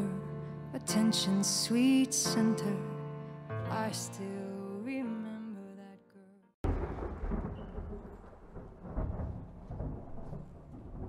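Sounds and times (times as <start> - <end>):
low rumbling noise: 6.6 - 11.0.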